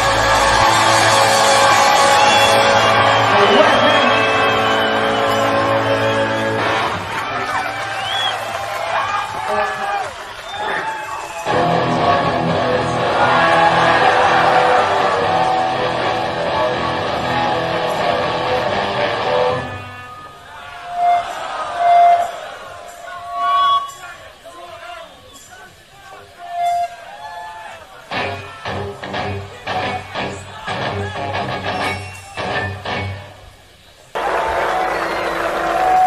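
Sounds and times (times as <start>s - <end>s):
crowd whooping: 0.0s - 25.2s, 34.2s - 36.0s
distorted electric guitar chord: 11.5s - 19.8s.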